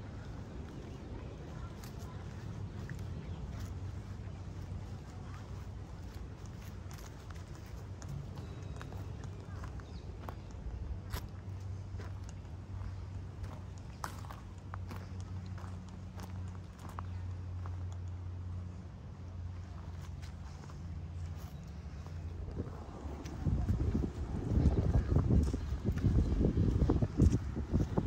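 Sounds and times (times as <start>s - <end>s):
steady low hum: 0.0s - 28.0s
footsteps on wood-chip mulch: 0.1s - 18.0s, 19.5s - 28.0s.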